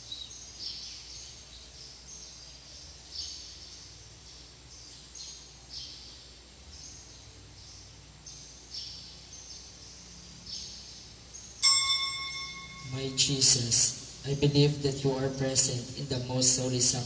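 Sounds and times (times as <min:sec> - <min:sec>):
small bird chirping: 0:00.0 - 0:15.8
altar bell ringing: 0:11.6 - 0:14.2.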